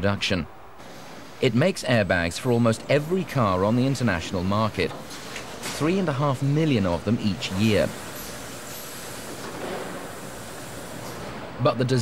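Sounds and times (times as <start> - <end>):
factory machinery hum and hiss: 0.1 - 12.0.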